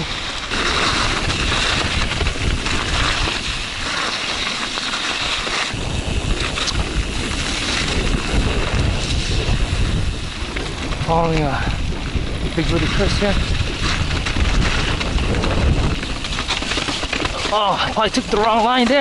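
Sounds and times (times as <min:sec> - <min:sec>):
wind buffeting microphone: 0:00.0 - 0:03.9, 0:05.7 - 0:19.0
bike tyres rolling over snow: 0:00.0 - 0:19.0
heavy low rumble: 0:05.7 - 0:18.4.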